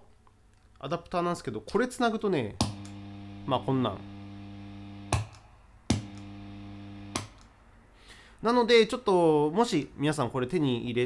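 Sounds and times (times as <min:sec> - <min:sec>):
electrical hum with overtones: 0:02.6 - 0:07.5.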